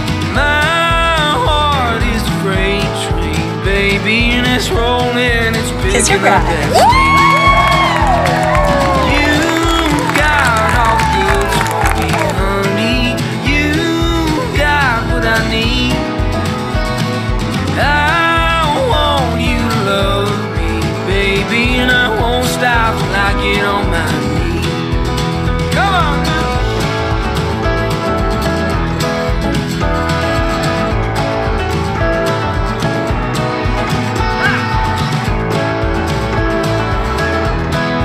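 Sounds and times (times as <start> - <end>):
country song: 0.0 - 38.0.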